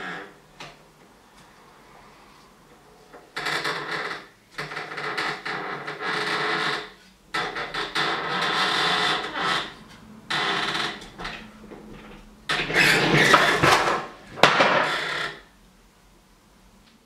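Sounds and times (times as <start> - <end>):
wooden wheel grinding on axle: 10.4 - 14.9.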